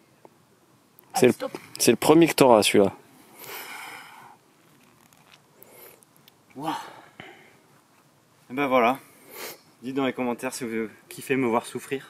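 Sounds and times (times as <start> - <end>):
man breathing out: 3.3 - 4.4.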